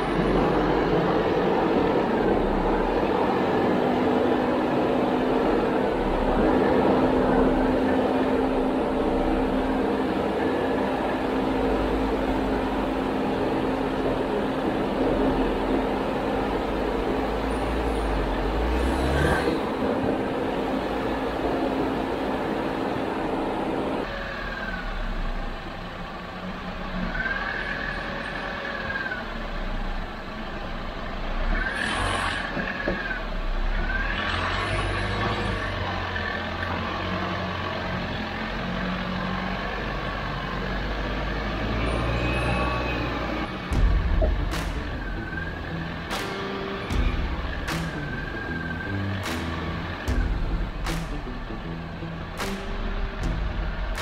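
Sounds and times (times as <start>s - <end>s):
low engine rumble: 0.0s - 27.2s, 27.9s - 54.0s.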